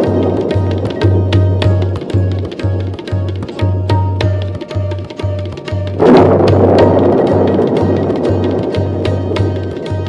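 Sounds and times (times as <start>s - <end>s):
loud rushing wash: 5.9s - 10.0s.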